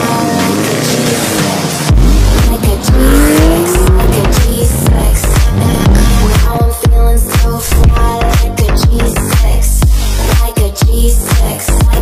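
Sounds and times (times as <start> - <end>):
hip-hop track with heavy bass: 0.0 - 12.0.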